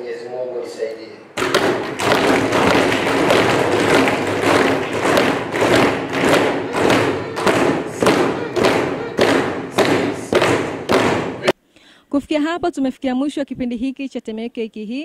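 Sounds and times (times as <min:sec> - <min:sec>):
rhythmic applause: 0:01.4 - 0:11.6.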